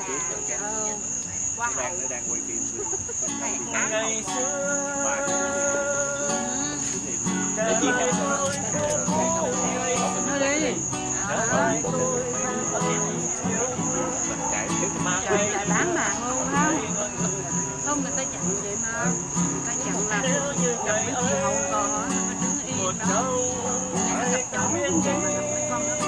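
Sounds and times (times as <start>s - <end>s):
crickets chirping: 0.0s - 26.0s
voices: 0.0s - 26.0s
music: 3.3s - 26.0s.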